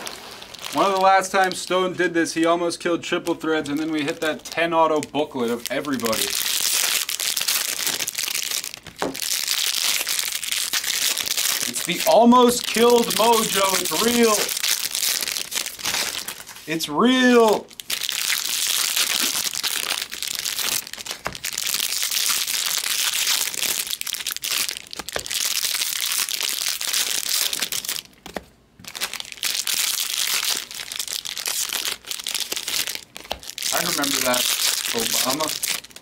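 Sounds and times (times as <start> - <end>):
foil wrappers crinkling: 0.0 - 36.0.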